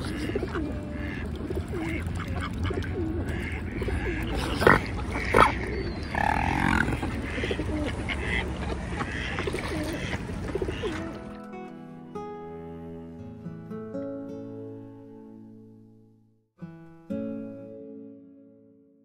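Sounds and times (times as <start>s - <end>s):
ducks and swans calling: 0.0s - 11.4s.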